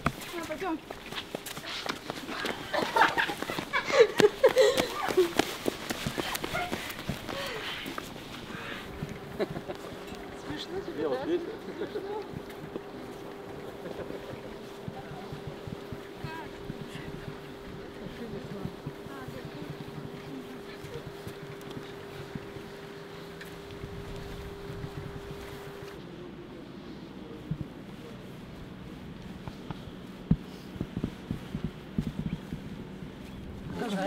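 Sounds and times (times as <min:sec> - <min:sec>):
footsteps on wet pavement: 0:00.0 - 0:34.0
steady hum: 0:00.0 - 0:34.0.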